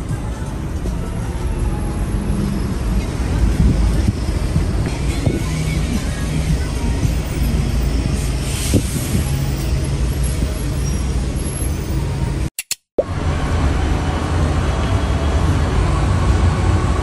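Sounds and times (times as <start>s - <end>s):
traffic rumble: 0.0s - 17.0s.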